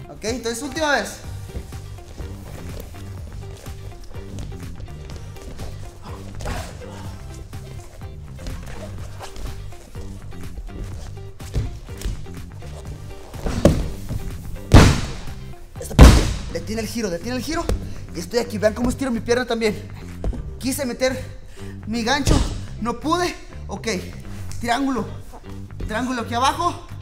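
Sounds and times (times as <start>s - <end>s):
background music with steady beat: 0.0s - 27.0s
bodies thudding on mat: 3.7s - 7.1s, 13.2s - 16.5s.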